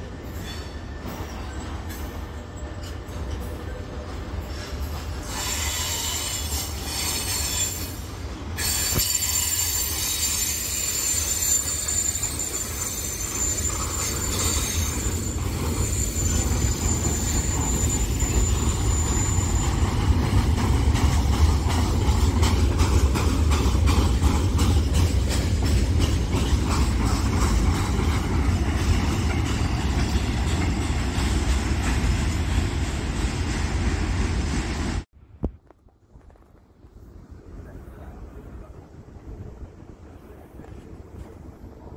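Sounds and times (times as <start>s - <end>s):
train wheels squealing: 0.0s - 35.1s
train rumbling: 0.0s - 41.9s
wheels clicking over rail joints: 8.6s - 33.4s.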